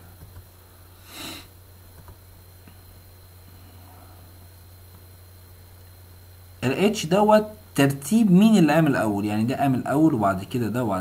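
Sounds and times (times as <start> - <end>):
steady low hum: 0.0 - 11.0
man sniffing: 0.9 - 1.5
faint clicks: 1.9 - 2.8.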